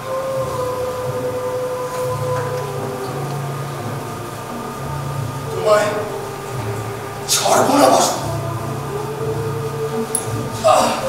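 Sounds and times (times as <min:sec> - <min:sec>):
held droning tones: 0:00.0 - 0:11.0
low pulsing bass: 0:00.0 - 0:11.0.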